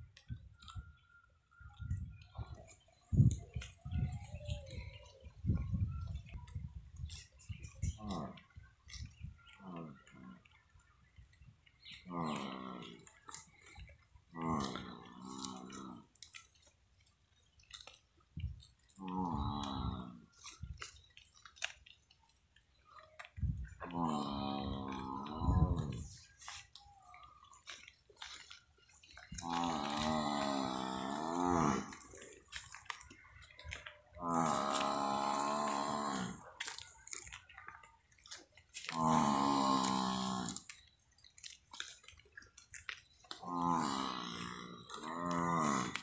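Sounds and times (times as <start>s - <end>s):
teeth chewing dry grass: 0.0s - 46.0s
water buffalo bawling: 12.0s - 16.6s, 23.7s - 37.5s, 38.2s - 40.8s, 43.3s - 46.0s.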